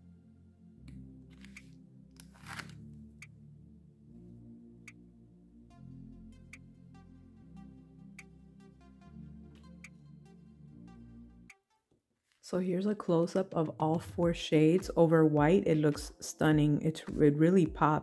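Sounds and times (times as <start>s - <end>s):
low sustained music chords: 0.0s - 11.5s.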